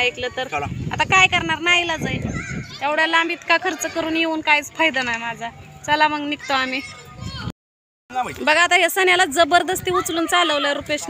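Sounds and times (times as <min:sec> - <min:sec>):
woman talking: 0:08.5 - 0:11.0.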